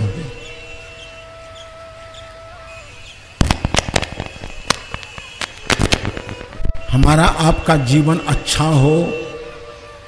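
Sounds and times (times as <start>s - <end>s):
sharp cracks and pops: 3.4s - 6.7s.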